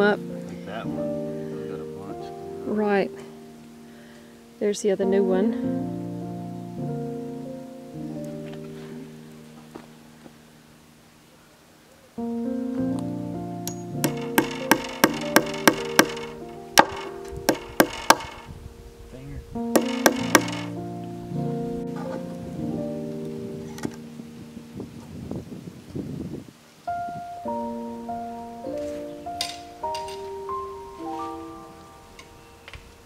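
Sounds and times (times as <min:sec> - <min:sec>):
background music: 0:00.0 - 0:11.0, 0:12.2 - 0:25.0, 0:26.8 - 0:33.0
hammer tapping nails into wood: 0:14.0 - 0:18.4, 0:19.8 - 0:20.7.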